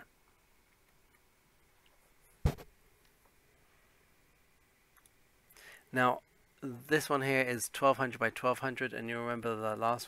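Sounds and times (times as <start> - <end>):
breath: 5.5 - 5.9
man speaking: 5.9 - 10.0.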